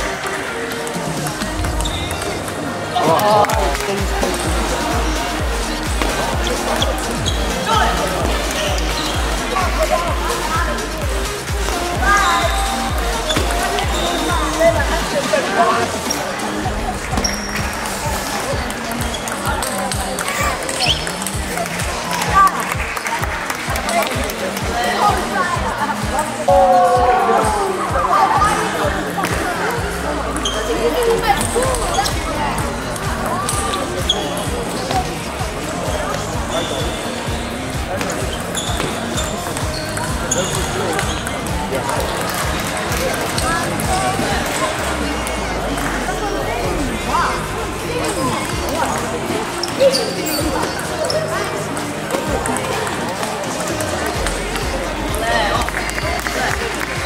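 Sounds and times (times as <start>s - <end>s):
shoes squeaking on floor: 1.4s - 3.3s, 5.8s - 10.8s, 11.7s - 16.4s, 17.1s - 21.3s, 30.3s - 32.3s, 33.5s - 35.2s, 35.8s - 43.7s, 49.4s - 52.8s.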